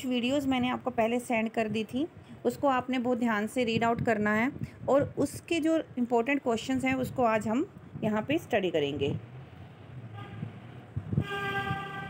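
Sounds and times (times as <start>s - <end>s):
horn-like steady tone: 10.1s - 12.0s.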